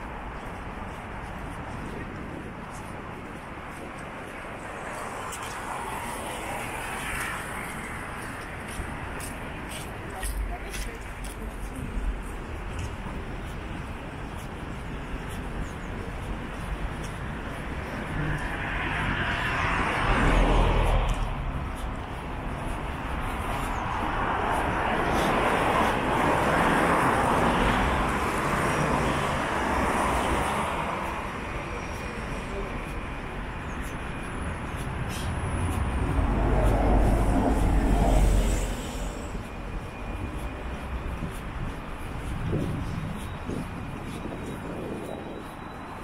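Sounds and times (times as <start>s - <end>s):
cars and buses passing: 0.0s - 46.0s.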